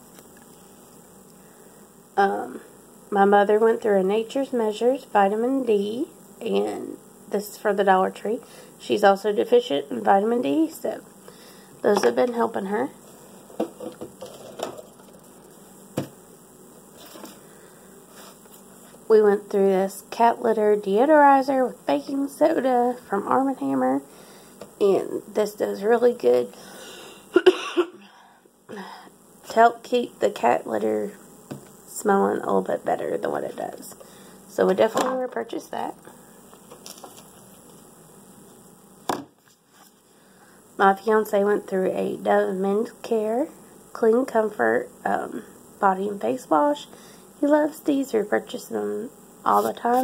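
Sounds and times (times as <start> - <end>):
low steady hum: 0.0 - 50.0
products handled on tabletop: 36.5 - 37.9
even hiss: 48.8 - 50.0.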